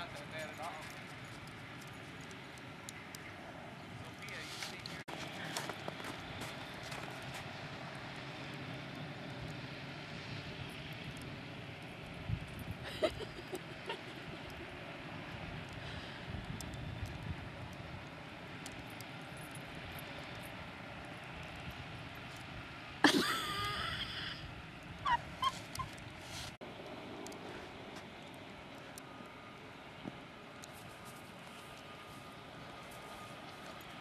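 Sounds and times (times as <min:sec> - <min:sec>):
dog calling: 0:25.0 - 0:26.0
dog yipping: 0:25.0 - 0:26.0.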